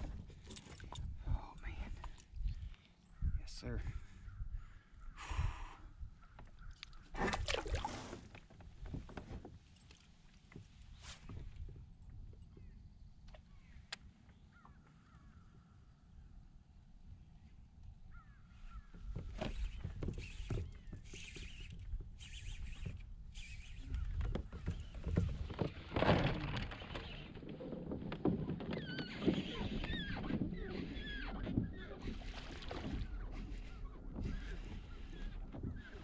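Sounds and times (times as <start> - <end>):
wind rumbling on microphone: 0.0 - 8.0, 18.1 - 36.0.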